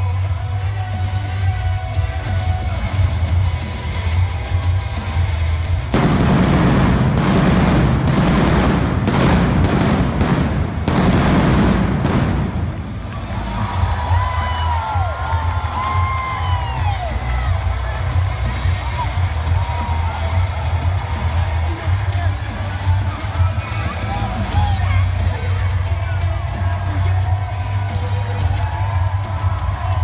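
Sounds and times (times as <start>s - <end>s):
stage pyrotechnics rushing and banging: 5.8s - 14.2s
music with heavy bass beat: 6.0s - 14.0s.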